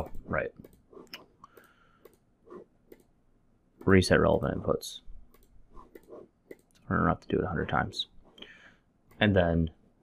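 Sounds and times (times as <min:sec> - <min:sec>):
man talking: 0:00.0 - 0:00.6, 0:03.8 - 0:05.1, 0:06.8 - 0:08.2, 0:09.2 - 0:09.8
computer mouse clicks: 0:00.0 - 0:02.2, 0:02.9 - 0:03.1, 0:05.3 - 0:06.8.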